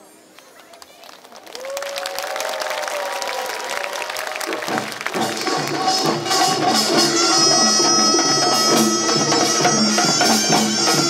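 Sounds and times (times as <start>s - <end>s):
audience applause and cheering: 0.4s - 6.8s
drums: 4.4s - 11.0s
reedy wind instrument: 5.2s - 11.0s.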